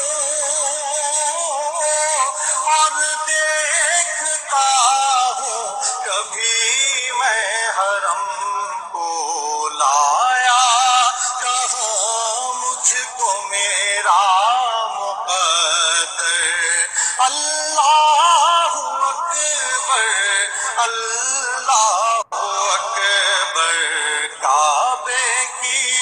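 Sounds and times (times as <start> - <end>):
man singing devotional song: 0.0 - 26.0.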